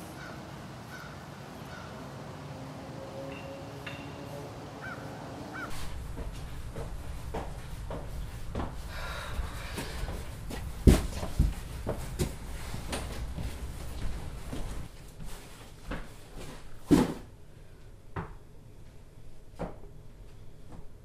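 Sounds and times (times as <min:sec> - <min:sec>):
footsteps: 0:05.7 - 0:17.2
cardboard boxes knocking: 0:09.8 - 0:12.4.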